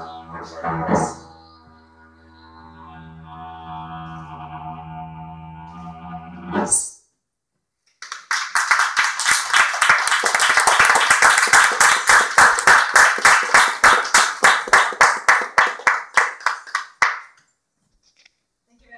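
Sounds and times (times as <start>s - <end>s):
audience applauding: 8.0s - 17.4s.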